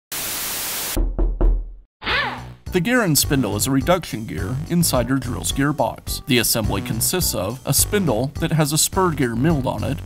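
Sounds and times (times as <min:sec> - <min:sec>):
static hiss burst: 0:00.1 - 0:01.0.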